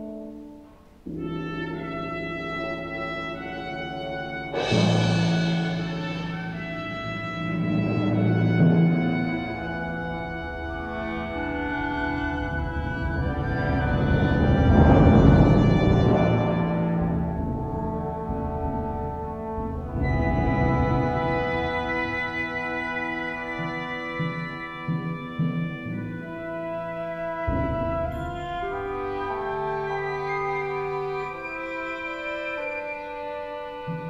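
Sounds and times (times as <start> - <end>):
wind ensemble sustained chord: 9.2 - 24.5.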